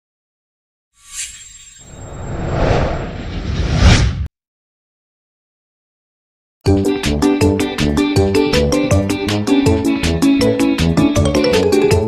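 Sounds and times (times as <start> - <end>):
loud rushing rumbling effect: 1.9 - 4.3.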